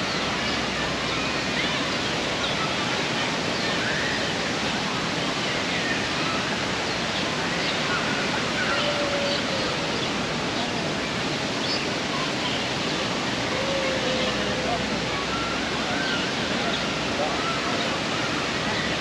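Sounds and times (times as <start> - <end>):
faint distant voices: 7.8 - 19.0.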